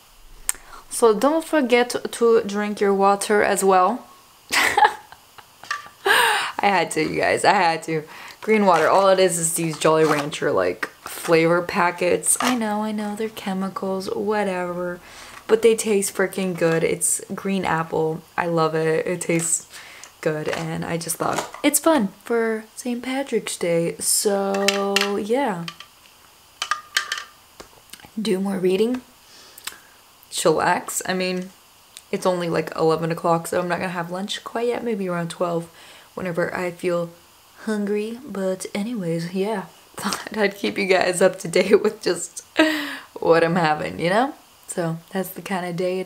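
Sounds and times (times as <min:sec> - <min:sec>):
woman laughing breathily: 0:04.5 - 0:06.6, 0:42.6 - 0:43.1.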